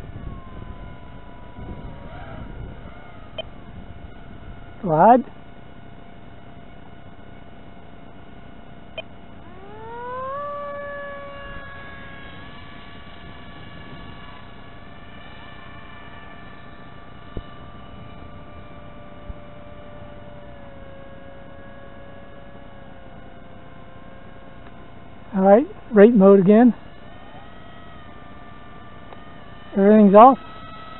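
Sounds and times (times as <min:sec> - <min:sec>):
model plane motor whine: 0:00.0 - 0:30.9.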